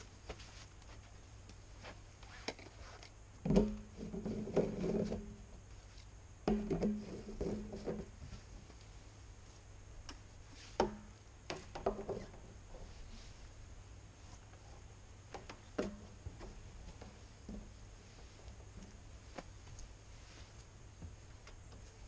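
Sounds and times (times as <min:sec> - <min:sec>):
plastic pipe knocking and scraping: 0:03.4 - 0:05.5, 0:06.4 - 0:08.4, 0:10.8 - 0:12.4, 0:15.3 - 0:17.8.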